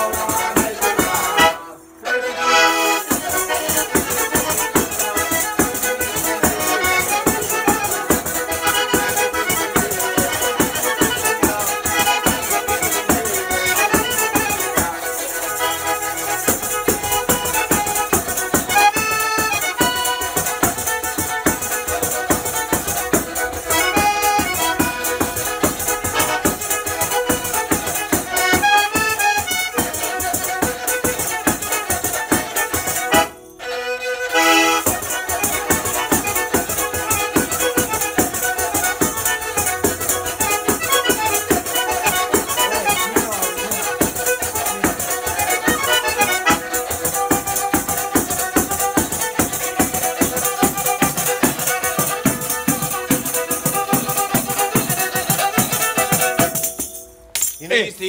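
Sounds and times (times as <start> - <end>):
bagpipe drone and melody: 0.0 - 56.7
bowed string instrument: 0.0 - 57.4.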